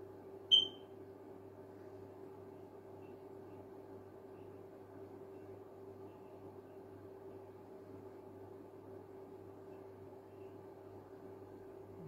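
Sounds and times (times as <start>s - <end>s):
faint steady hum: 0.0s - 12.0s
high-pitched electronic beep: 0.5s - 0.8s.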